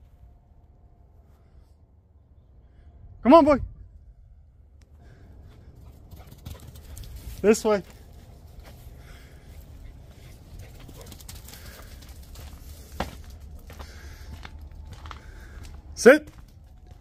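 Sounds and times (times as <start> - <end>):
steady low rumble: 0.0 - 17.0
footsteps on grass and gravel: 7.0 - 17.0.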